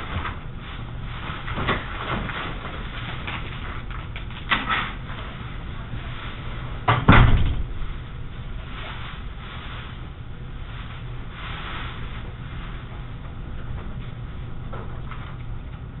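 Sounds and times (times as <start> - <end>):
room noise: 0.0 - 16.0
heavy thumps: 6.8 - 8.0.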